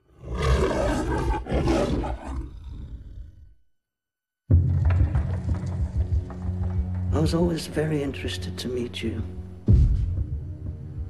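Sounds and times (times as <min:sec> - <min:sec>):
lion roaring: 0:00.0 - 0:03.6.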